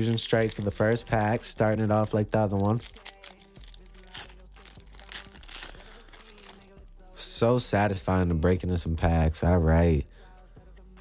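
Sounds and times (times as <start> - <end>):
foil wrapper crinkling and tearing: 0.0 - 6.8.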